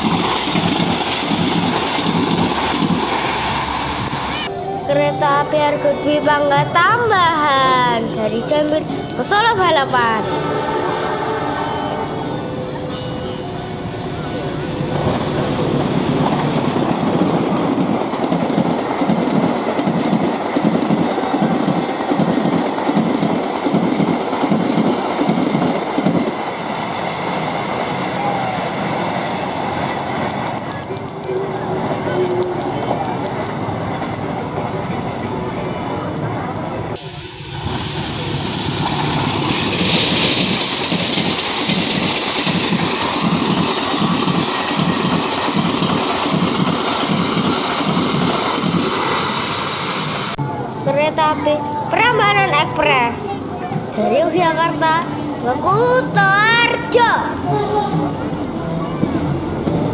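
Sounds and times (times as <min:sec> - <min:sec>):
train wheels clattering: 0:00.0 - 0:04.2, 0:14.9 - 0:27.9, 0:38.6 - 0:49.4
passenger train passing: 0:00.0 - 0:59.9.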